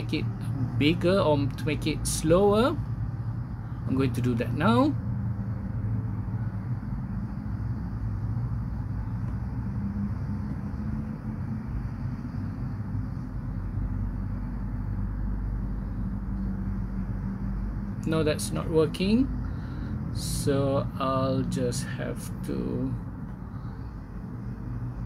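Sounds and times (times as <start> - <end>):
faint steady tone: 0.0 - 25.0
low background hum: 0.0 - 25.0.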